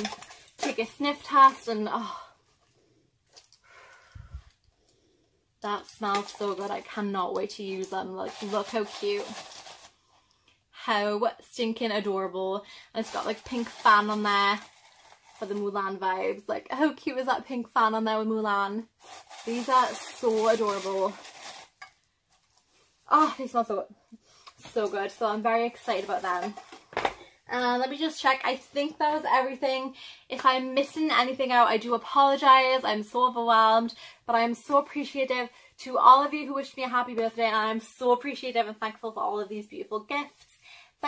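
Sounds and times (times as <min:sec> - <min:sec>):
woman speaking: 0:00.0 - 0:02.3, 0:05.6 - 0:09.4, 0:10.8 - 0:14.7, 0:15.4 - 0:21.2, 0:23.1 - 0:24.0, 0:24.6 - 0:26.6, 0:27.5 - 0:40.6
tissue paper rustling: 0:07.5 - 0:10.0, 0:13.0 - 0:16.0, 0:19.0 - 0:23.6.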